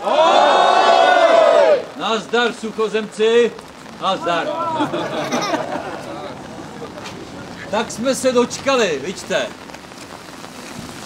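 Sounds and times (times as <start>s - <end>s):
crowd shouting together: 0.0s - 1.9s, 4.1s - 7.0s.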